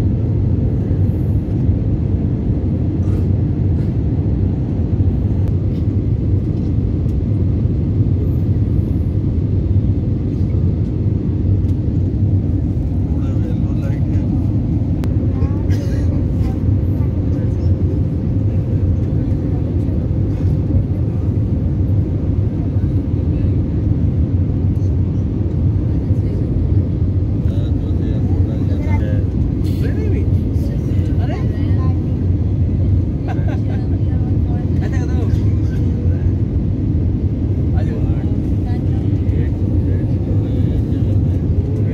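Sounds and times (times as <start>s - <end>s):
airliner cabin rumble: 0.0s - 41.9s.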